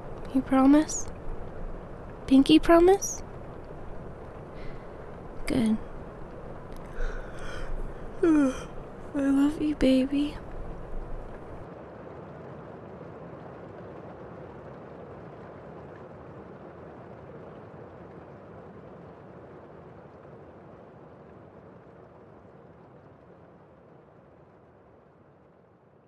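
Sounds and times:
steady rushing noise: 0.0s - 11.8s.

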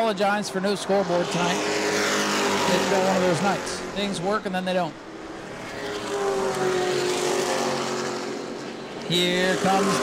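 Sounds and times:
race car engines passing: 0.0s - 10.0s.

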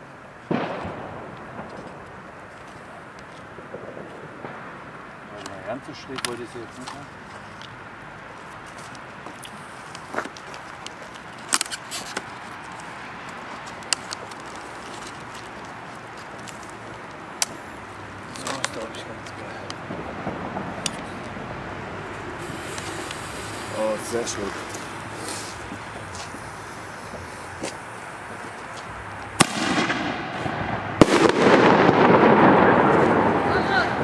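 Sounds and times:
firecracker bangs: 0.5s - 2.3s, 18.4s - 21.2s, 29.0s - 34.0s
lit fuse hissing: 22.4s - 29.4s.

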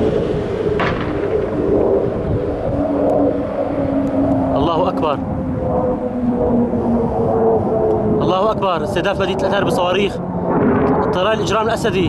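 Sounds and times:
fighter jet engine droning: 0.0s - 12.0s.

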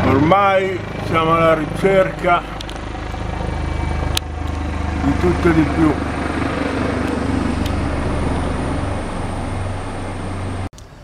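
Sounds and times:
helicopter rotor beating: 0.0s - 10.7s.

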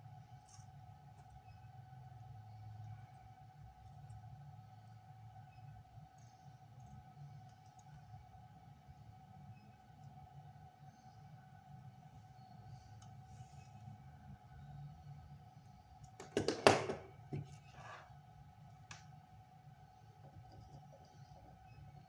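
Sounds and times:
faint steady hum: 0.0s - 22.0s
small tools knocking on wooden desk: 16.2s - 17.6s.

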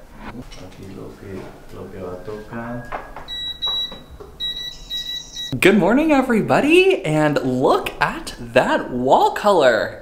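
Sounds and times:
high-pitched electronic beeps: 2.6s - 5.6s.

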